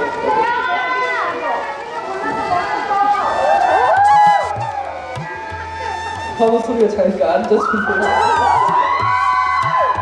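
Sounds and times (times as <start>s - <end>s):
people talking: 0.0s - 4.5s, 5.3s - 8.8s.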